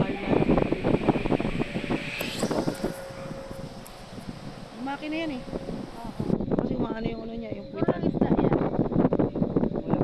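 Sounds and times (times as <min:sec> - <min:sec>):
faint steady hum: 0:00.0 - 0:08.4
wind buffeting microphone: 0:00.0 - 0:10.0.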